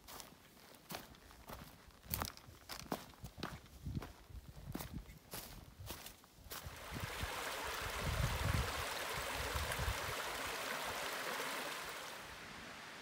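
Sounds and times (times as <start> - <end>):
footsteps on leaves and stones: 0.0 - 6.8.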